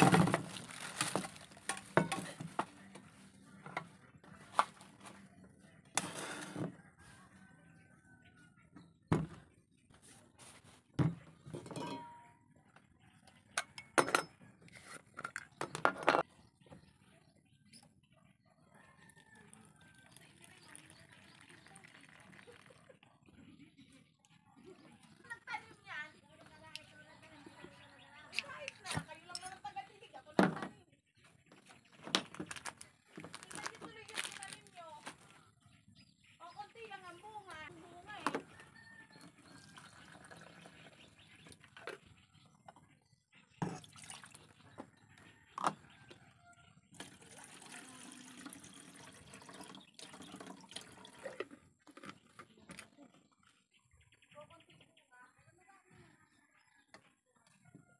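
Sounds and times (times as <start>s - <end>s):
water pouring from plastic bottle: 0.0s - 2.0s, 19.6s - 22.9s, 32.2s - 35.2s, 43.6s - 44.5s, 47.0s - 51.6s
fuel trickling into burner: 47.0s - 51.5s.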